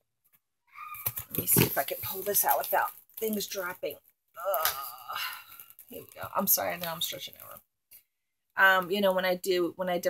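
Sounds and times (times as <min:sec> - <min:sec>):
woman speaking: 0:01.3 - 0:07.6, 0:08.6 - 0:10.0.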